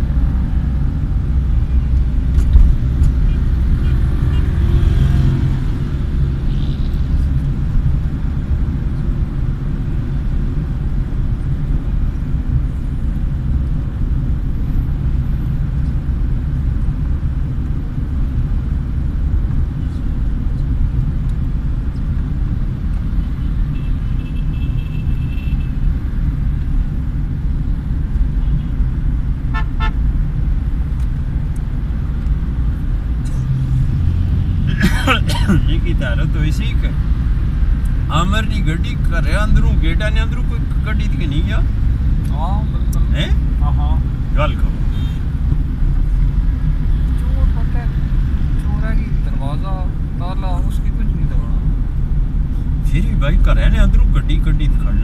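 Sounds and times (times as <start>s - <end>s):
engine and tyre rumble: 0.0s - 55.0s
car horn toots: 29.5s - 30.0s.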